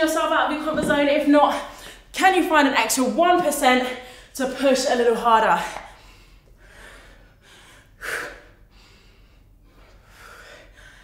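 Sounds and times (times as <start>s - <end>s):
woman breathing hard: 5.8s - 11.0s.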